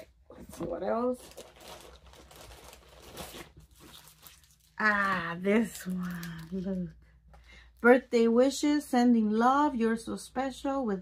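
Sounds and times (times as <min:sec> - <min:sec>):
plastic packaging crinkling: 0:00.5 - 0:06.9.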